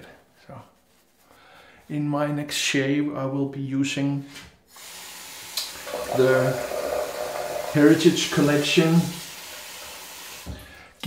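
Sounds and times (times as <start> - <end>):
tap water running into sink: 4.8 - 10.6.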